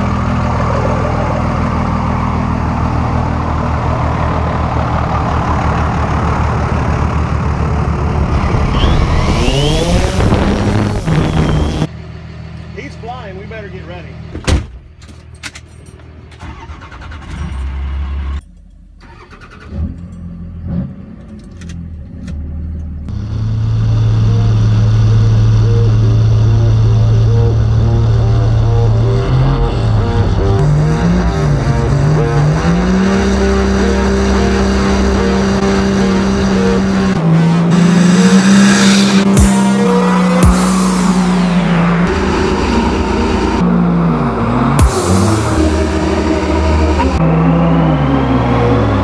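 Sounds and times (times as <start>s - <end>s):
diesel truck engines revving: 0.0s - 14.4s, 16.0s - 49.0s
tires squealing: 8.0s - 11.9s.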